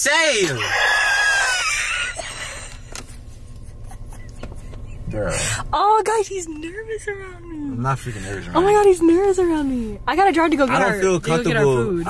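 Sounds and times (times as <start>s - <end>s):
car cabin rumble: 1.6s - 12.0s.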